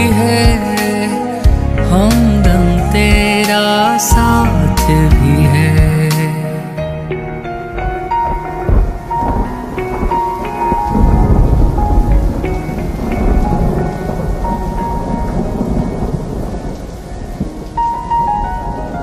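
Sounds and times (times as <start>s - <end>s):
heavy rain: 0.0s - 19.0s
soft slow music: 0.0s - 19.0s
thunder rumbling: 7.1s - 19.0s.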